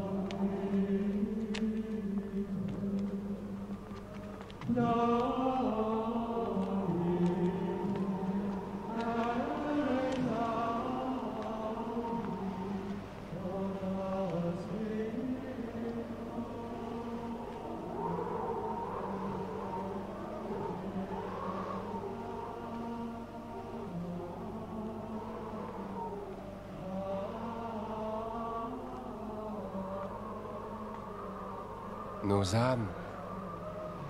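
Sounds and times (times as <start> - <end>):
choir chanting in unison: 0.0 - 34.0.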